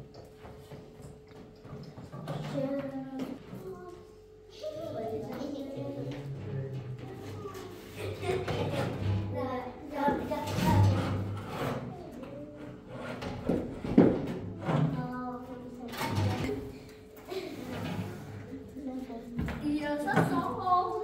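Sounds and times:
people talking: 2.3 - 11.2, 14.8 - 21.0.

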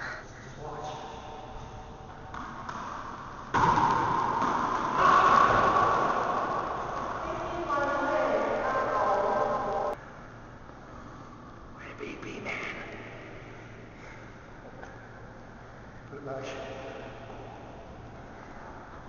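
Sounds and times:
wordless voice sounds: 11.8 - 13.1.

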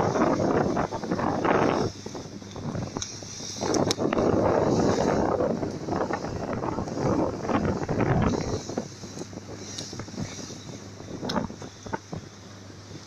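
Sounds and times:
water rushing along hull: 0.0 - 13.0
wind buffeting microphone: 0.0 - 13.0.

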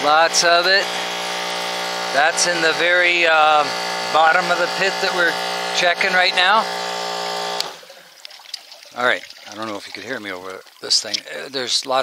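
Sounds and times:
electric hum: 0.0 - 9.7
water trickling and splashing: 7.6 - 12.0.

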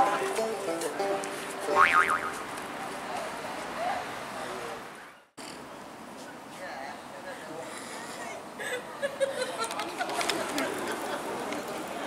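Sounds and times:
faint music with held notes: 0.0 - 1.8.

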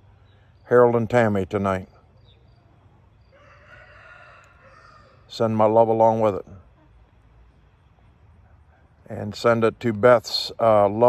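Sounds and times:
rooster crowing: 3.2 - 5.3.

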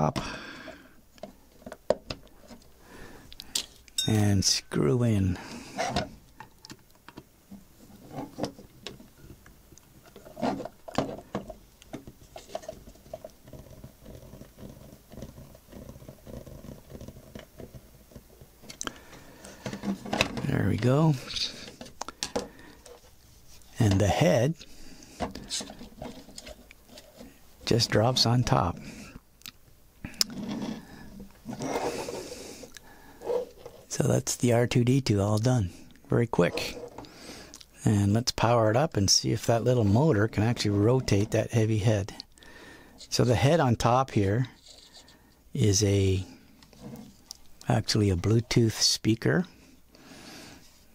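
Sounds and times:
plastic rubbing and scraping: 7.5 - 9.1, 10.0 - 24.2, 25.1 - 28.9, 30.2 - 32.5, 36.3 - 37.1, 46.6 - 47.4
plastic creaks: 10.1 - 20.5.

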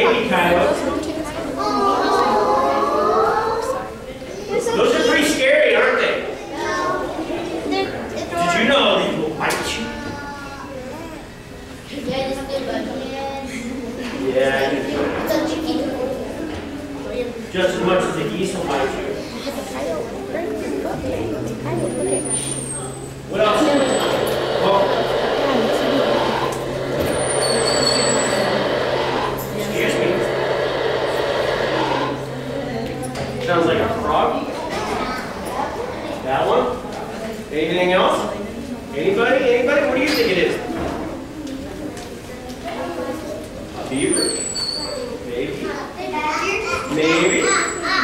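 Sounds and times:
children talking: 0.0 - 48.0
low electrical hum: 0.0 - 48.0.

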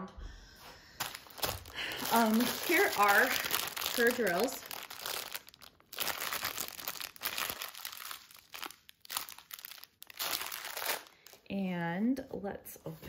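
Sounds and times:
plastic packaging crinkling: 1.0 - 11.5.

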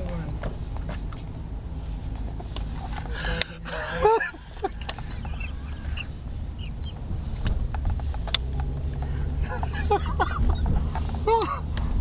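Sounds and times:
car engine and road rumble: 0.0 - 12.0
men laughing hard: 3.6 - 6.2, 9.4 - 11.7.

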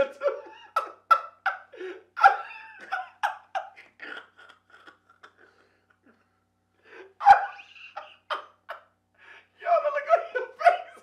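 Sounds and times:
man laughing hard: 0.0 - 6.2, 6.9 - 11.0.

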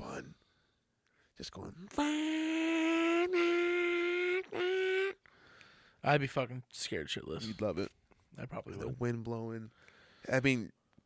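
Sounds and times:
man imitating motorcycle engine: 1.8 - 5.2.

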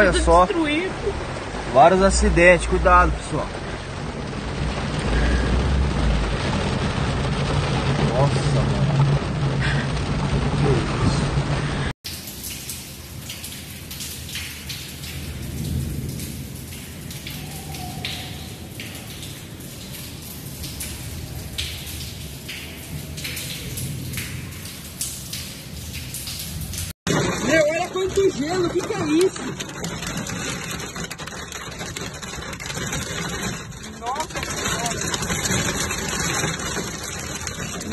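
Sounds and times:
heavy rain on vehicle: 0.0 - 37.9
sharp rain taps: 0.0 - 37.9.

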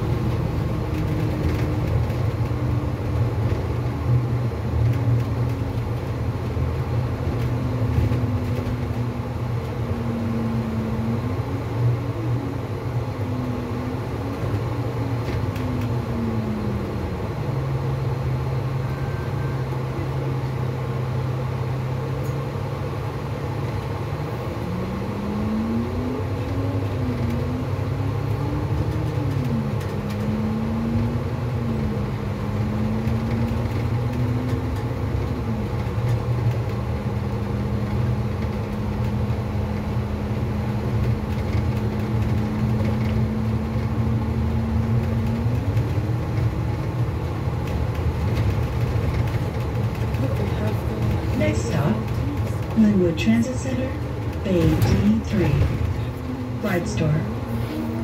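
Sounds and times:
bus engine drone: 0.0 - 58.0
driveline whine: 0.0 - 58.0.

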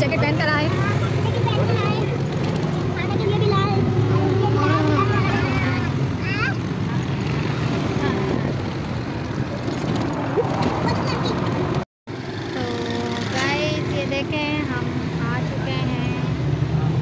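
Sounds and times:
voices talking: 0.0 - 9.6
auto-rickshaw engine running: 0.0 - 17.0
road noise: 0.0 - 17.0.

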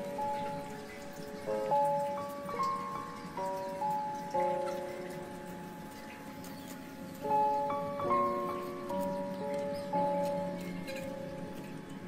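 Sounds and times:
soft background music chords: 0.0 - 12.0.

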